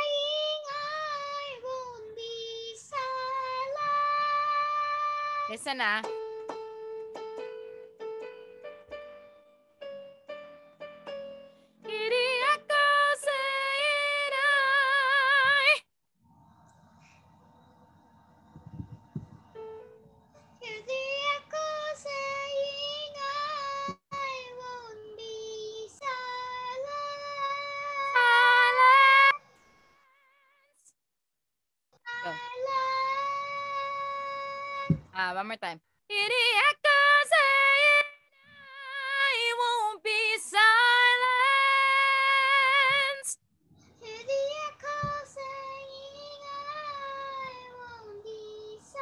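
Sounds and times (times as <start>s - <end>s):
person singing with vibrato: 26.9s - 29.4s.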